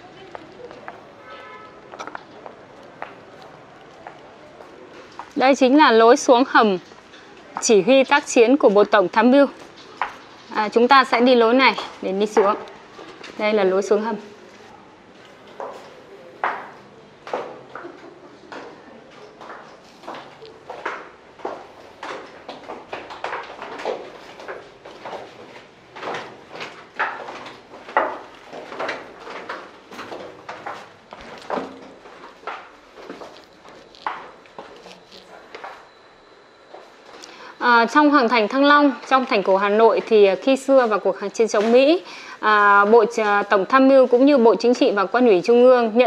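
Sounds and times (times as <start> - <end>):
footsteps echoing on concrete: 0.0 - 36.0.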